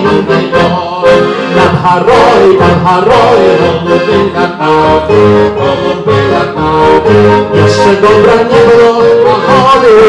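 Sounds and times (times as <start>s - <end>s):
accordion chords: 0.0s - 10.0s
man singing: 0.0s - 10.0s.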